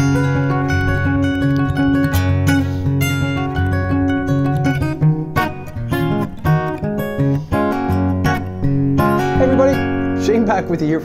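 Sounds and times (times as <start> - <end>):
fingerpicked acoustic guitar: 0.0 - 11.0
man's voice: 9.3 - 11.0.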